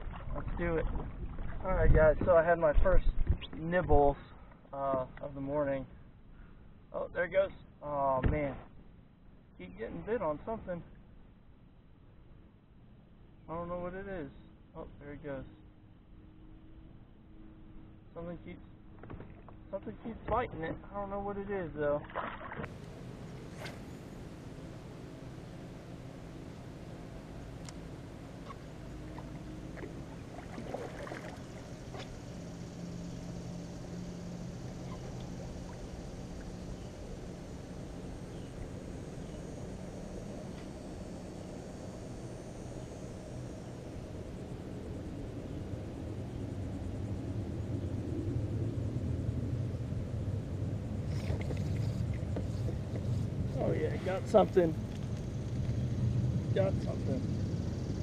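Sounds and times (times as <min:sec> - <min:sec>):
wind and water rumble: 0:00.0 - 0:14.3, 0:15.0 - 0:58.0.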